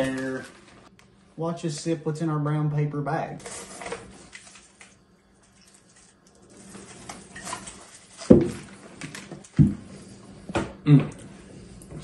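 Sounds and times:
paper bags rustling: 0.0s - 0.9s, 3.4s - 9.6s.

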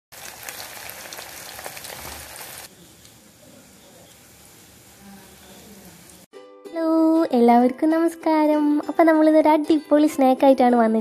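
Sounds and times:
food deep-frying in hot oil: 0.1s - 6.3s.

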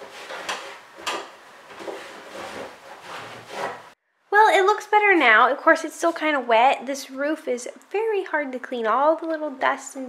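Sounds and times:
cloth scrubbing plastic: 0.0s - 4.0s.

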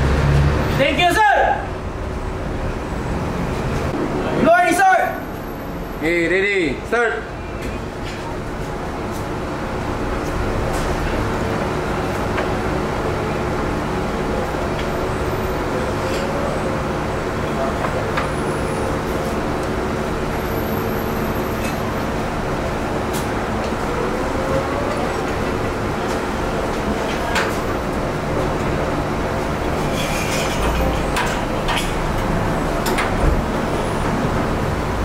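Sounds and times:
workshop machinery hum: 0.0s - 35.0s.

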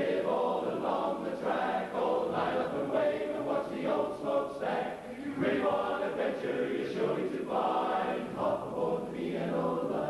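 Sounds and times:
male chorus singing a cappella: 0.0s - 10.0s.

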